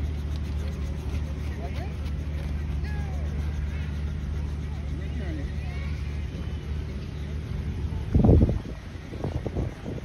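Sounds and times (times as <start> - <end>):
faint voices: 0.0 - 10.0
helicopter droning: 0.0 - 10.0.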